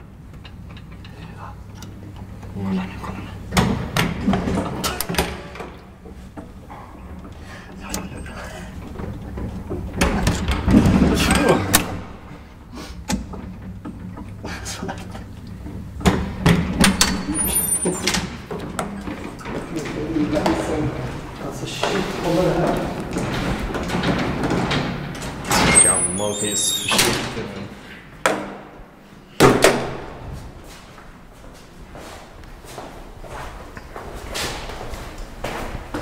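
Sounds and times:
elevator low hum: 0.0 - 36.0.

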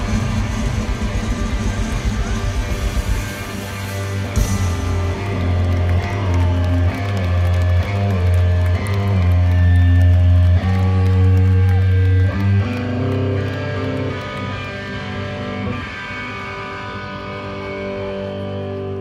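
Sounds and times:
bass guitar: 0.0 - 19.0
electric guitars playing chords: 0.0 - 19.0.

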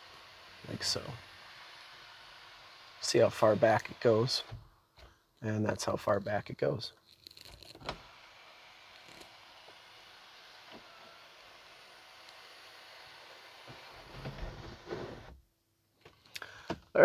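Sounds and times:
faint steady hiss: 0.0 - 17.0.

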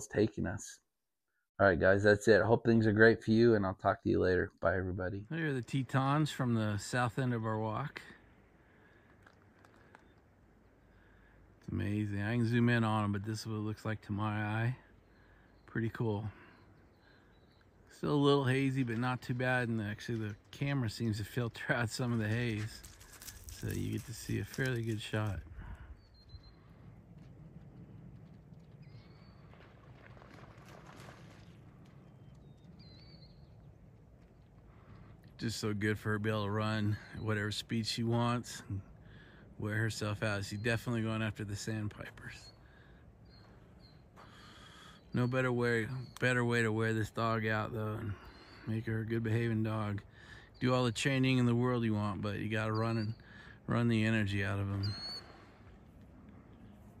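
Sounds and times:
outdoor background noise: 1.6 - 57.0
dog running on sand: 28.4 - 32.0
short high bird calls: 54.8 - 55.8.

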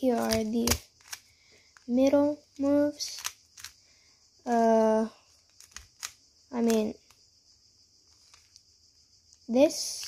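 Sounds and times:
faint plastic puzzle clicks: 0.0 - 7.2, 8.0 - 10.0.

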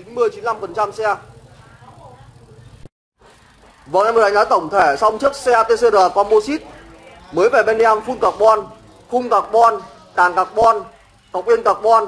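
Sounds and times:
man speaking: 0.0 - 1.3, 3.9 - 12.0.

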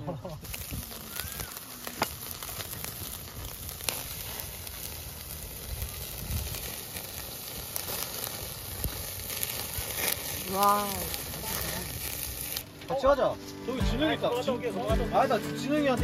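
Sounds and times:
crackling pops: 0.2 - 13.0
meat sizzling on a grill: 0.2 - 14.1.

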